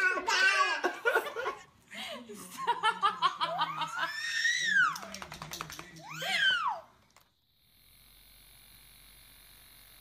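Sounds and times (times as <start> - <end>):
baby shrieking: 6.0 - 6.9.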